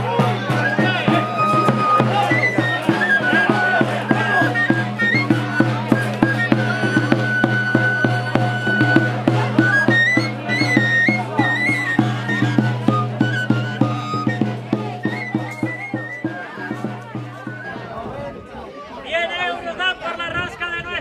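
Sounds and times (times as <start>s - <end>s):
steady drum beat: 0.0s - 17.9s.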